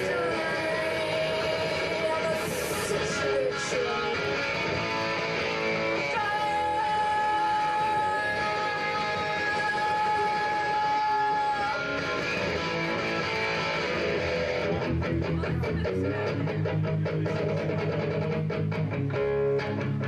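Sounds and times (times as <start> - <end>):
live electric guitar rock: 0.0 - 20.0.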